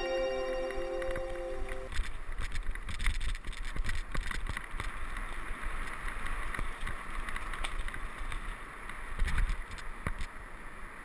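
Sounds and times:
background music: 0:00.0 - 0:01.9
wind noise on microphone: 0:01.0 - 0:10.4.

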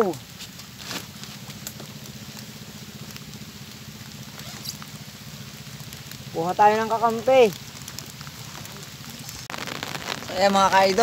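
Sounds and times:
low steady hum: 0:00.0 - 0:11.0
rain pattering: 0:00.0 - 0:11.0.

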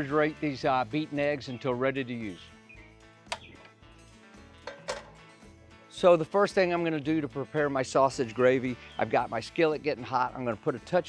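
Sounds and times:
faint background music: 0:00.0 - 0:11.0
skillet knocking on stove grate: 0:04.6 - 0:05.2.

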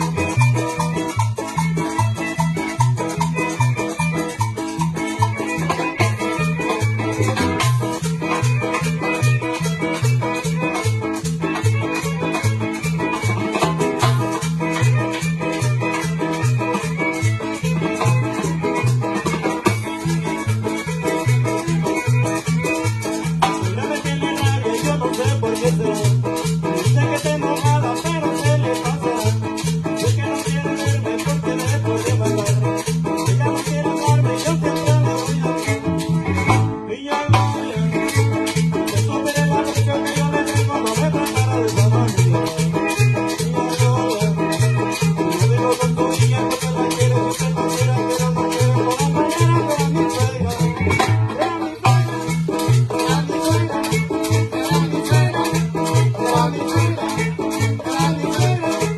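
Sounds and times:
bass line: 0:00.0 - 0:58.9
live band playing: 0:00.0 - 0:58.9
percussion rhythm: 0:00.0 - 0:58.9.

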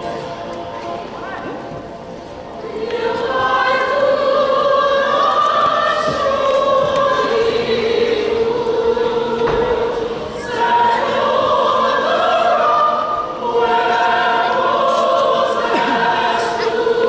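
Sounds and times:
mixed choir singing: 0:00.0 - 0:17.0.

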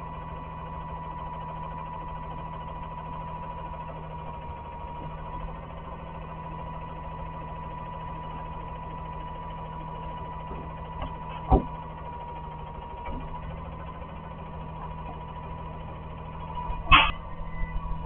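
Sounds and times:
garbage truck engine idling: 0:00.0 - 0:18.0
thin high whine: 0:16.6 - 0:18.0.

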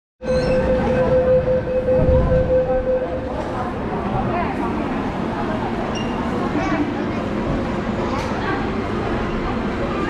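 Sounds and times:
steady wavering train tone: 0:00.2 - 0:04.1
low train rumble: 0:00.3 - 0:10.0.

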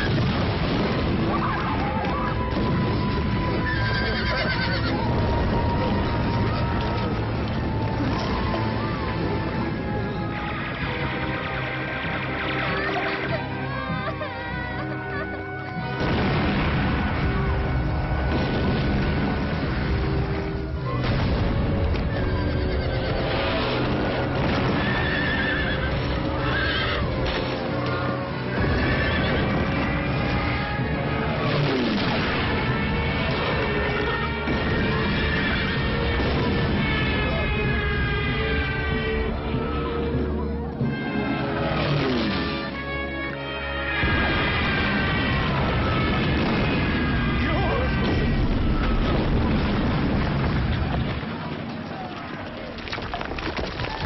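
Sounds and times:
film music: 0:00.0 - 0:54.0
horses whinnying: 0:01.3 - 0:09.4, 0:22.0 - 0:40.4
horse whinnying: 0:03.5 - 0:05.0, 0:22.1 - 0:23.6, 0:24.7 - 0:27.2, 0:27.8 - 0:31.9.

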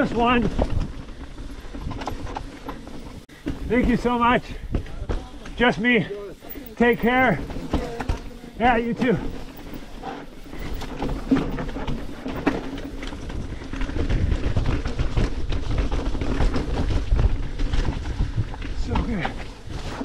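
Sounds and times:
mountain bike rattling over rocks: 0:00.0 - 0:20.0
tyre and wind rumble: 0:00.0 - 0:20.0.

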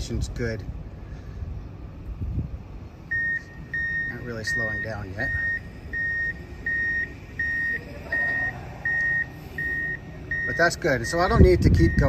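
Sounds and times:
low construction site rumble: 0:00.0 - 0:12.0
high electronic warning beeps: 0:03.1 - 0:12.0.

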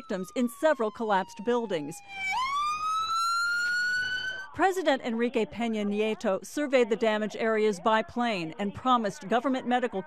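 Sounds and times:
ambulance siren wailing: 0:00.0 - 0:04.6.

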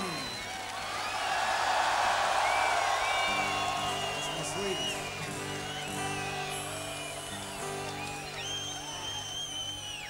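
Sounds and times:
stadium crowd cheering and whistling: 0:00.0 - 0:10.0.

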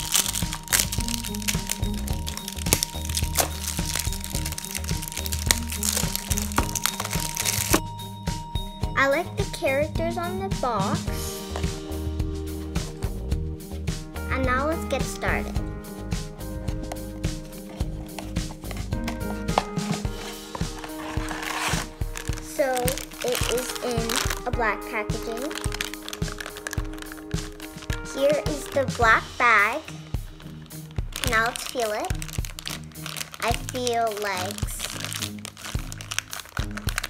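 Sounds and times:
plastic bag rustling: 0:00.0 - 0:07.8, 0:17.4 - 0:29.2, 0:30.1 - 0:37.0
background music: 0:00.0 - 0:37.0.

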